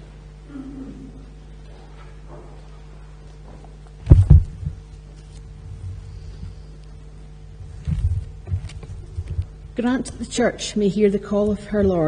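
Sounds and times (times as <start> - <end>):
low electrical hum: 0.0 - 12.0
heavy thumps on microphone: 4.0 - 4.9, 7.6 - 9.6.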